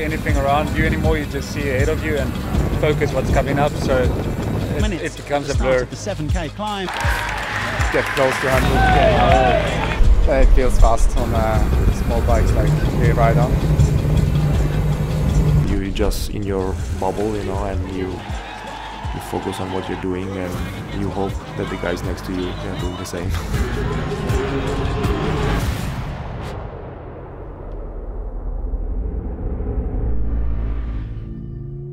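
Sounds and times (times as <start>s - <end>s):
wind and road noise: 0.0s - 5.6s, 8.6s - 18.1s
deep rumbling logo sting: 25.4s - 31.9s.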